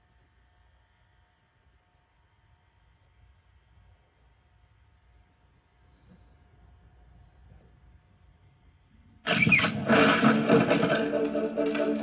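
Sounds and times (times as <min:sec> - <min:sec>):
loud noisy burst: 0:09.3 - 0:12.0
music with held notes: 0:09.7 - 0:12.0.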